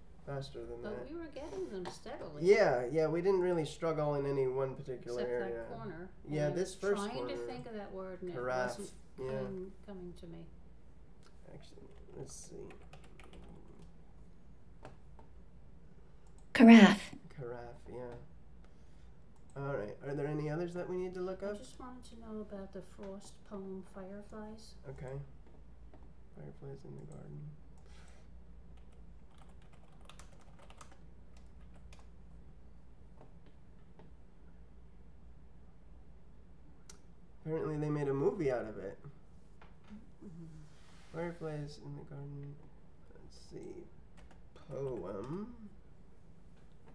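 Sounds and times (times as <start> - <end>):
faint low hum: 0.0 - 46.9
faint typing on keyboard: 11.2 - 14.2, 16.2 - 16.5, 19.3 - 19.7, 24.9 - 32.3, 43.4 - 45.6
typing on a computer keyboard: 11.9 - 13.9, 28.8 - 32.1, 44.1 - 45.0.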